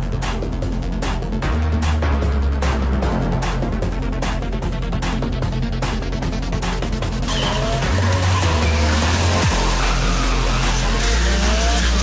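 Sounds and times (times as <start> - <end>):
background music with beat: 0.0 - 12.0
car engine revving: 7.0 - 12.0
tyre squeal: 7.3 - 12.0.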